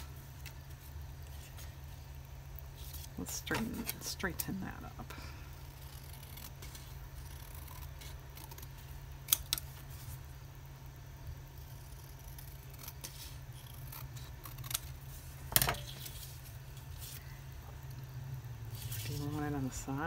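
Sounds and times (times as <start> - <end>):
scissors snipping paper: 3.3 - 4.6.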